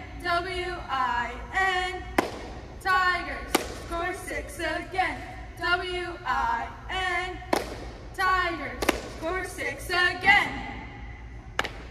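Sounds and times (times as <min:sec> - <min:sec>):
woman chanting a cheer: 0:00.0 - 0:02.2, 0:02.8 - 0:10.9
hand clap: 0:02.2 - 0:02.6, 0:07.5 - 0:07.9, 0:08.8 - 0:09.2, 0:11.6 - 0:11.9.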